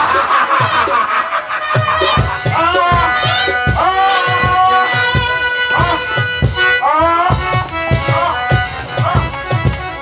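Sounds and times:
man laughing into microphone: 0:00.0 - 0:04.8
drum strokes: 0:01.8 - 0:09.9.

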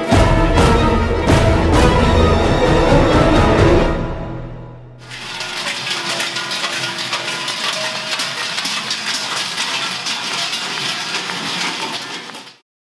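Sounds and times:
large cowbells clanging: 0:05.0 - 0:12.6.

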